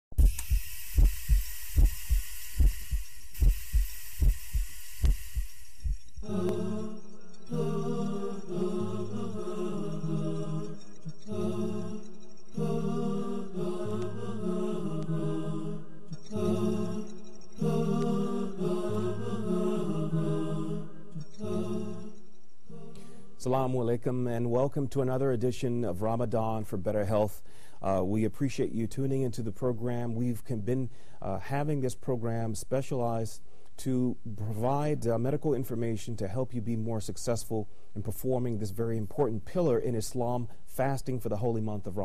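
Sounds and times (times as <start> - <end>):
heartbeat-like thumping: 0.0 - 6.4
hiss: 0.2 - 5.8
low held tone: 0.2 - 23.9
chanted vocal music: 6.2 - 27.2.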